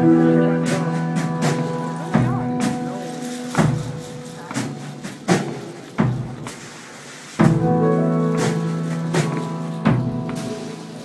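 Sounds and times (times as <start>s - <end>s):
low drum thuds: 0.6s - 6.6s.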